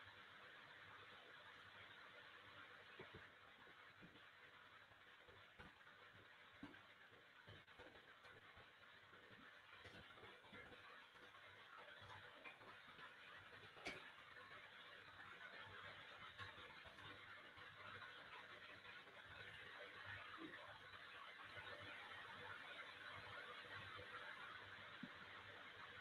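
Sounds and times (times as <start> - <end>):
microphone hiss: 0.0 - 15.6.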